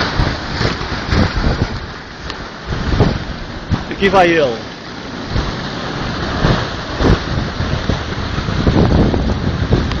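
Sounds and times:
low gusty thumps: 0.0s - 4.2s, 4.8s - 10.0s
sea surf: 0.0s - 10.0s
wind buffeting microphone: 0.0s - 10.0s.

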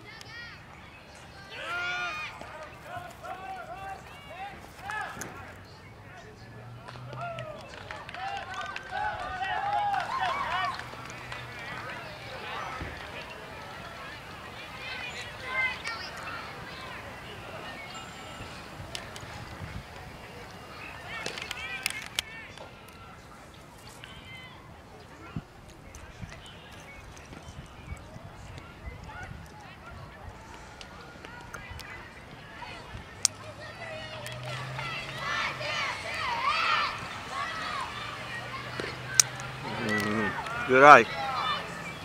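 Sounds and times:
high voices shouting and cheering: 0.0s - 42.0s.

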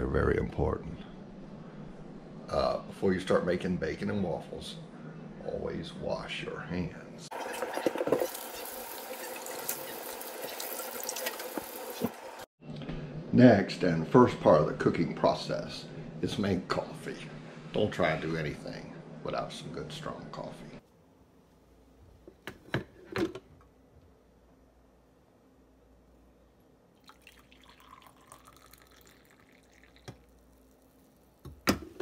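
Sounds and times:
faucet water running into sink: 7.3s - 12.3s, 27.0s - 30.2s.

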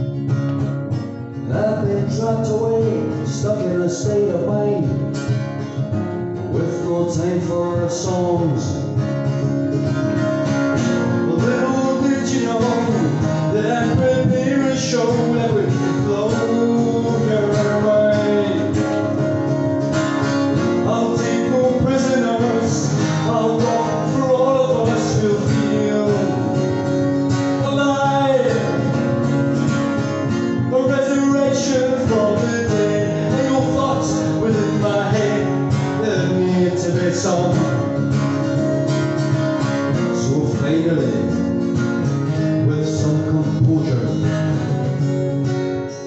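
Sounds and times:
strummed acoustic guitar: 0.0s - 46.0s.

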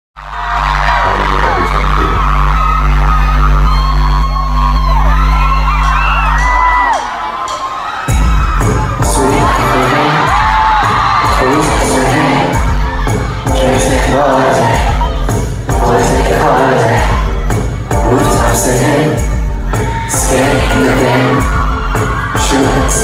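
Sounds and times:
fans screaming: 0.2s - 23.0s
drum beat: 8.1s - 23.0s.

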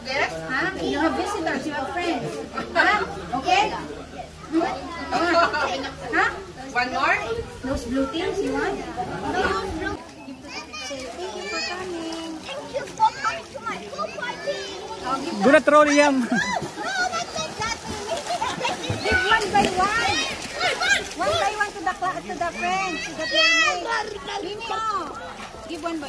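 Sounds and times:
indistinct chatter of voices: 0.0s - 26.0s.

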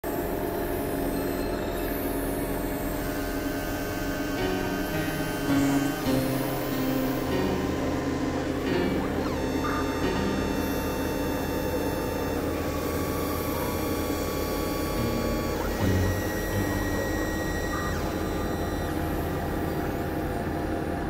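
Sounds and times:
buzzing synthesizer noise bed: 0.0s - 21.0s
low synthesizer drone: 0.0s - 21.0s
held synthesizer tones: 1.1s - 20.9s.

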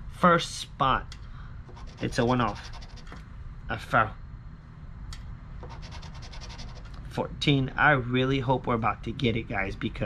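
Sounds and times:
scratching lottery ticket: 1.7s - 3.2s, 5.6s - 7.0s.

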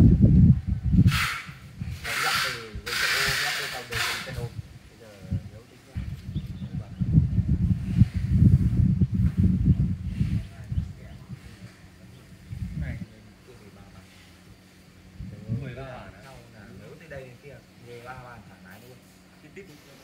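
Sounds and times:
wind buffeting microphone: 0.0s - 16.8s
short bursts of hiss: 1.1s - 4.5s.

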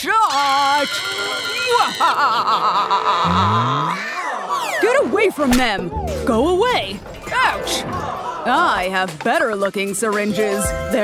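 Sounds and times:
background music: 5.4s - 11.0s.

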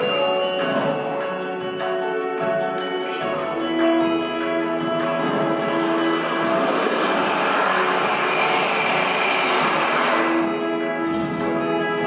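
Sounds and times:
soundtrack music: 0.0s - 12.0s
whooshing pass-by effect: 5.0s - 10.6s.

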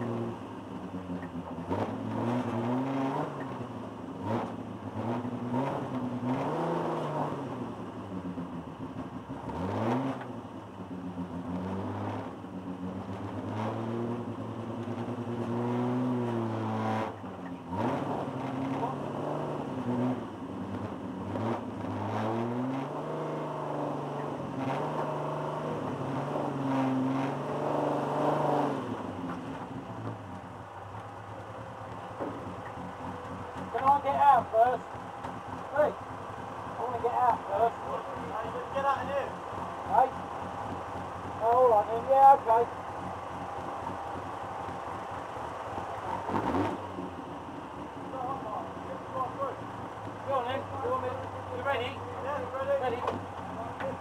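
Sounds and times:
racing car engine revving: 0.0s - 54.0s.

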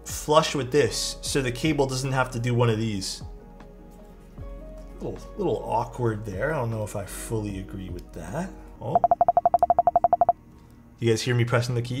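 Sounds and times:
rapid electronic beeps: 9.0s - 10.4s.

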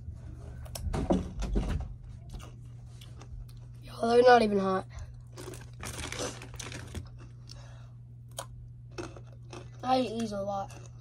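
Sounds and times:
chips crunching while chewed: 5.1s - 7.7s, 8.3s - 11.0s
foil bag rustling: 5.3s - 7.2s.

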